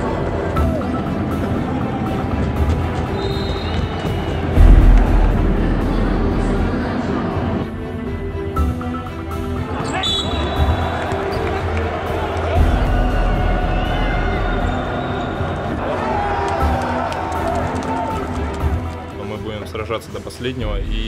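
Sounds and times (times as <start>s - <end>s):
crowd noise and voices: 0.0s - 21.0s
background music with bass line: 4.6s - 9.8s.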